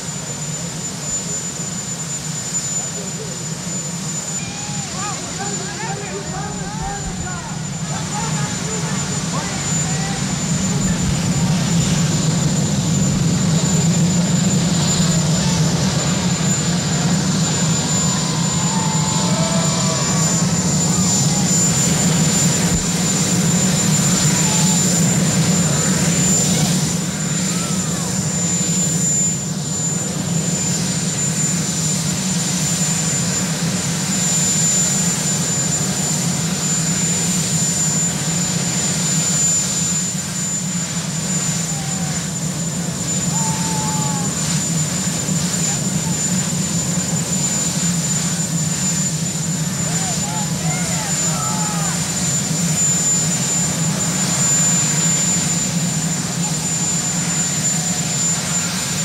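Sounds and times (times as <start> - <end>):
helicopter turbine engines running: 0.0 - 59.0.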